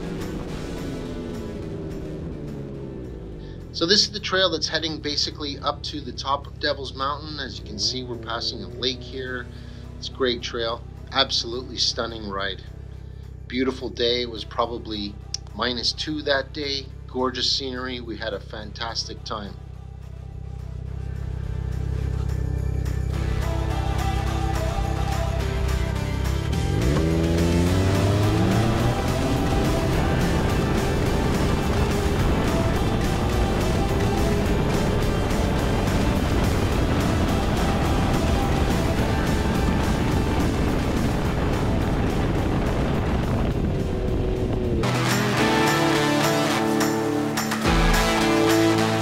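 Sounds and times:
snowmobile engine revving: 0.0 - 12.4, 25.4 - 49.0
music: 0.0 - 49.0.

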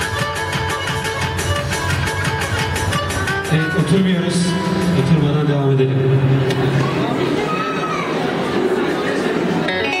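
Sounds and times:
plucked string music: 0.0 - 6.9, 9.6 - 10.0
guests chattering: 0.0 - 10.0
held note with overtones: 9.7 - 10.0.

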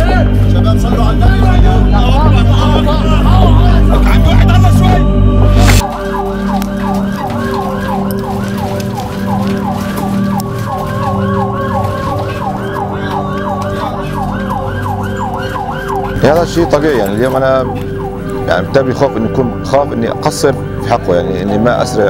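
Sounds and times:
ambulance siren yelping: 5.8 - 22.0.

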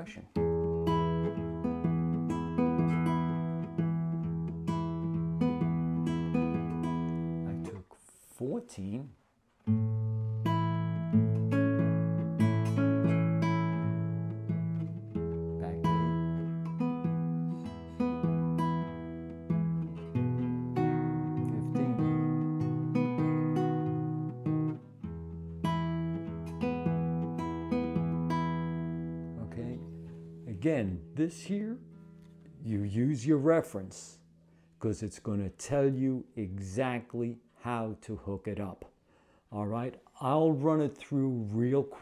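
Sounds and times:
fingerpicked nylon-string guitar: 0.0 - 8.0, 9.5 - 34.7.

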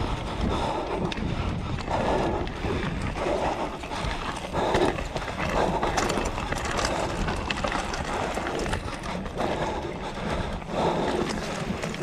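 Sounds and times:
bike rattling and clattering: 0.0 - 12.0
wind rumbling on microphone: 0.0 - 12.0
tyres crunching over loose stones: 2.8 - 12.0.

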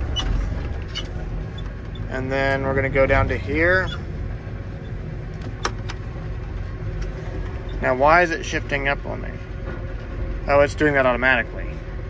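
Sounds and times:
tractor diesel engine idling: 0.0 - 12.0.

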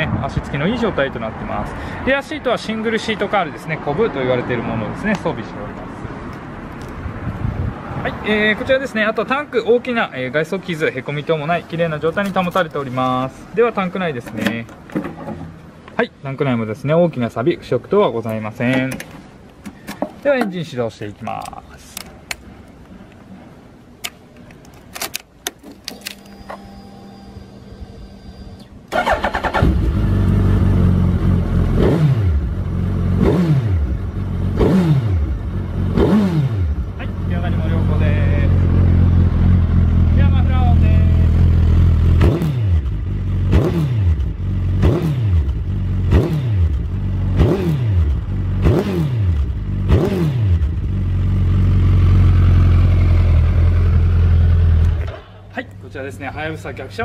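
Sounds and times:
motorcycle engine revving: 28.9 - 55.1.

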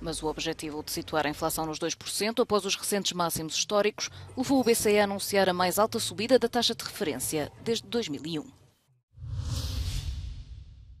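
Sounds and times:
whoosh with low rumble: 9.1 - 11.0.

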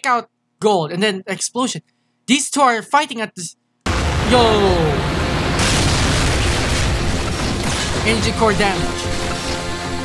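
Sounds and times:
deep explosion boom: 3.9 - 8.4
explosion hiss: 3.9 - 9.6.

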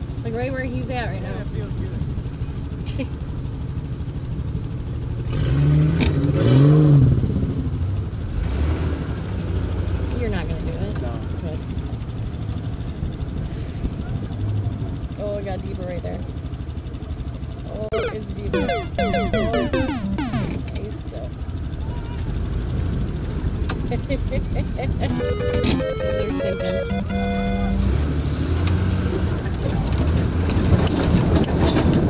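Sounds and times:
falling tones: 17.9 - 20.7, 25.1 - 28.0.

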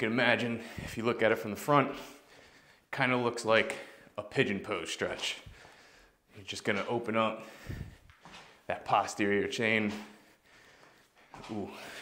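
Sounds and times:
man speaking: 0.0 - 2.2, 2.9 - 5.6, 6.3 - 7.6, 8.6 - 10.2, 11.4 - 12.0.

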